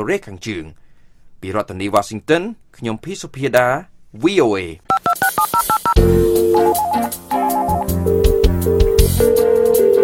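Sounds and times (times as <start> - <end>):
touch-tone dialing beeps: 4.9 - 10.0.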